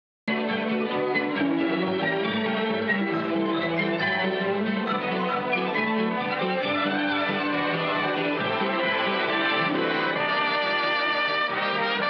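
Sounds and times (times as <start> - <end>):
orchestral music with violins: 0.3 - 12.0.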